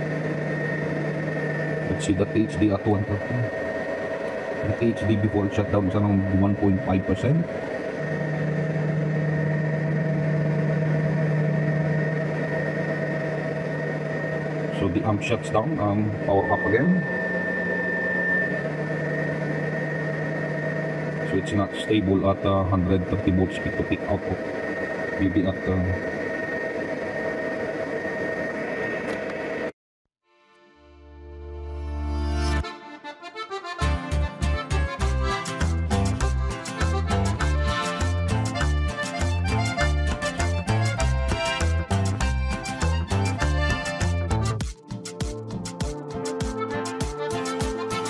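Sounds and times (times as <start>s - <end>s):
amplifier low hum: 0.0s - 29.7s
faint whining tones: 0.0s - 29.7s
background music: 30.8s - 48.0s.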